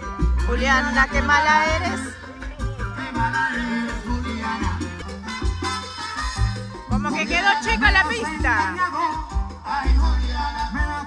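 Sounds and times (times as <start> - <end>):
live band playing latin dance music: 0.0 - 11.0.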